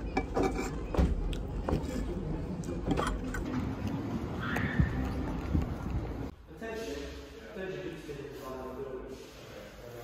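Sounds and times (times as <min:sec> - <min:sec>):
cafe background noise: 0:00.0 - 0:07.6.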